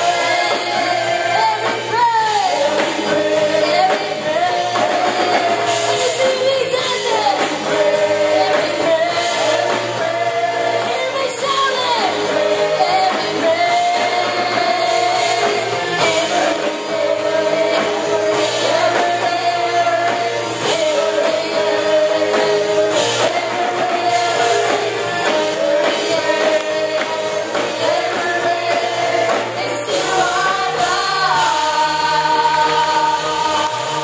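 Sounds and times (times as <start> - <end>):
backing music: 0.0 - 34.0
group singing through microphones: 0.0 - 34.0.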